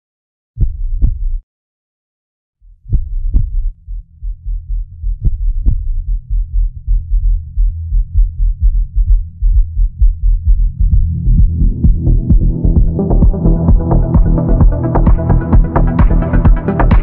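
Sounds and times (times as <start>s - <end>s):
deep bass thuds: 0.6s - 1.4s, 2.7s - 17.0s
low rumble: 2.8s - 17.0s.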